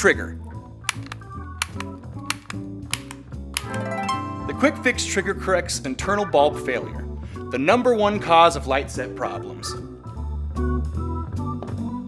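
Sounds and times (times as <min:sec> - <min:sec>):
background music: 0:00.0 - 0:12.0
plastic trigger clicks: 0:00.9 - 0:03.8.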